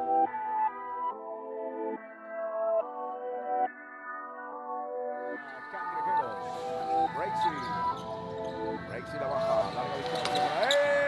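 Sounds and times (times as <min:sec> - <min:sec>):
music: 0:00.0 - 0:11.0
voices: 0:05.4 - 0:11.0.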